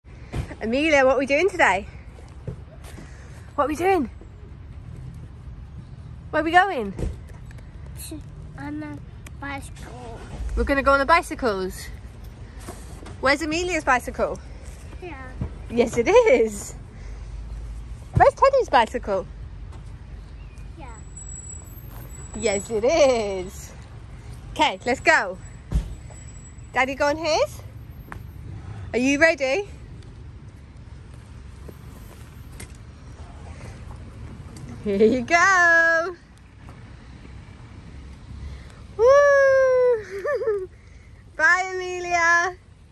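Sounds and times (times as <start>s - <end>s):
low outdoor rumble: 0.0s - 20.5s.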